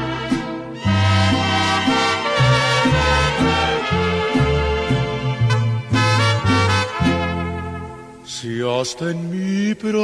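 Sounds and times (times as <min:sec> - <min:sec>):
instrumental mariachi music: 0:00.0 - 0:10.0.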